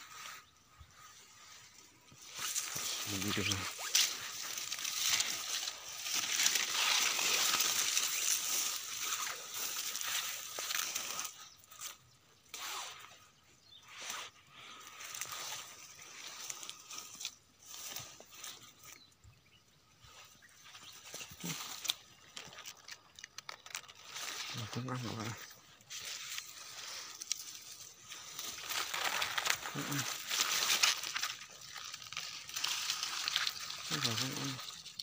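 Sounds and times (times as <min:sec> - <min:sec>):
dry leaves and brush rustling: 0:00.0 - 0:35.0
footsteps on leaf litter: 0:02.1 - 0:12.0, 0:20.4 - 0:35.0.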